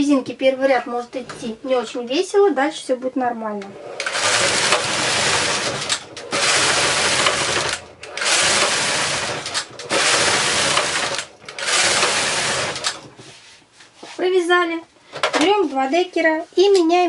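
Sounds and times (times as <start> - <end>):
knitting machine carriage clatter: 4.0 - 13.1.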